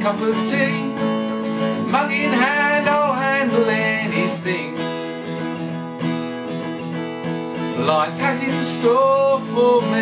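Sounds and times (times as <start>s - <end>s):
man singing: 0.0s - 4.9s, 7.6s - 10.0s
acoustic guitar strumming: 0.0s - 10.0s.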